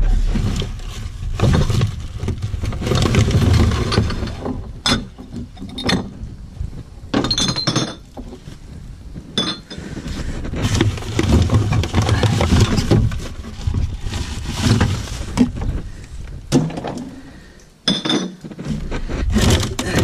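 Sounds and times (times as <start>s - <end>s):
plastic bags rustling: 0.0s - 4.8s, 9.3s - 17.5s
bottles and cans clinking: 7.1s - 8.1s, 9.4s - 9.8s, 17.8s - 18.4s.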